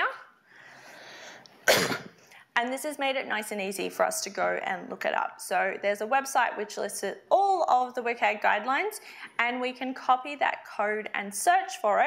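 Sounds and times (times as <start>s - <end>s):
person coughing: 1.6s - 2.2s.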